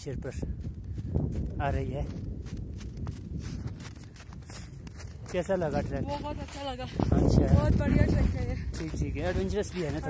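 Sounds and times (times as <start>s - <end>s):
footsteps on snow: 0.0s - 10.0s
low rumble on microphone: 0.0s - 10.0s.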